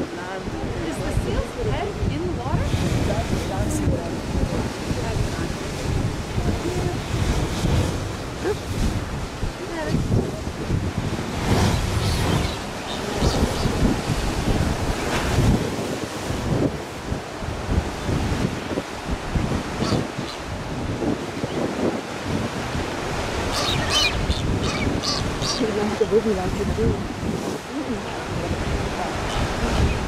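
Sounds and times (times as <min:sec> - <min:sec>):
sea surf: 0:00.0 - 0:30.0
wind buffeting microphone: 0:00.0 - 0:30.0.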